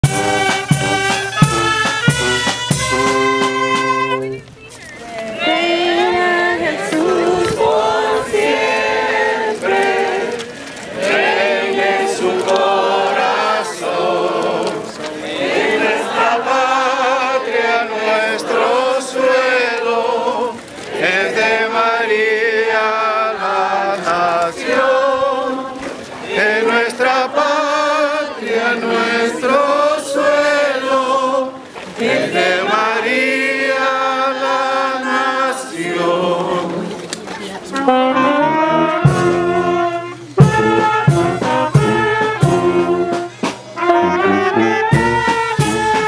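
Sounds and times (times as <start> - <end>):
group singing long held notes: 5.1 - 46.0.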